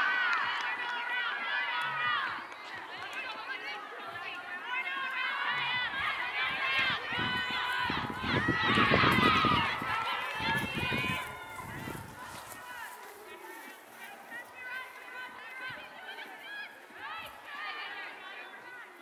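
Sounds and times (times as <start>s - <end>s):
distant high voices shouting: 0.0s - 19.0s.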